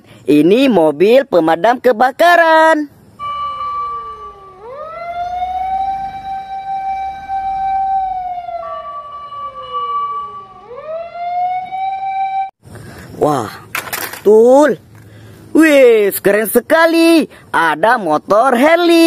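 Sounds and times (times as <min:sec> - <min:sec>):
fire engine siren wailing: 0:03.2 - 0:12.6.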